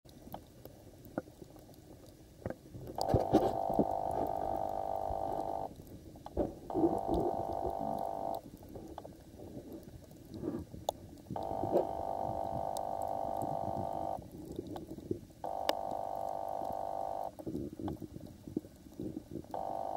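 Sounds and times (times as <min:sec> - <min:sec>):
low underwater rumbling: 0:00.1 - 0:19.6
steady hum: 0:03.0 - 0:09.0, 0:11.3 - 0:14.5, 0:15.4 - 0:17.7, 0:19.5 - 0:19.9.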